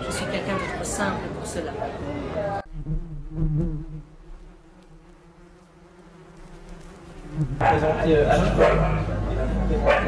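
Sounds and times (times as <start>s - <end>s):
bees buzzing: 2.6s - 7.6s.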